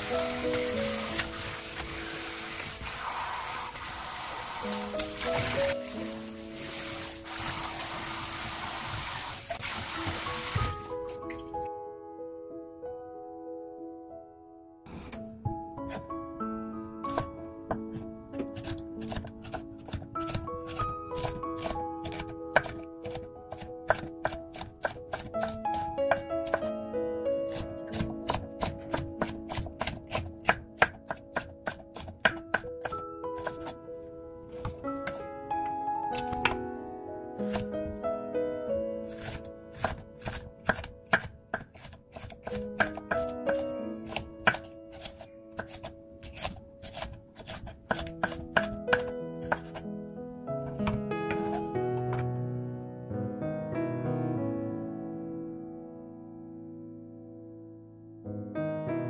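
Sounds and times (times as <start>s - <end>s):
knife slicing pepper on wooden board: 39.1s - 49.8s, 50.8s - 52.2s.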